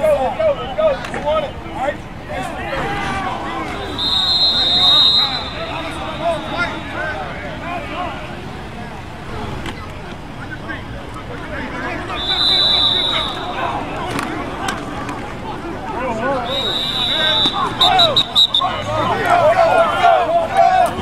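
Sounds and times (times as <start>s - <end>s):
voices shouting: 0.0s - 8.8s, 11.4s - 21.0s
coach's whistle blasts: 3.7s - 7.0s, 12.1s - 13.8s, 16.4s - 18.9s.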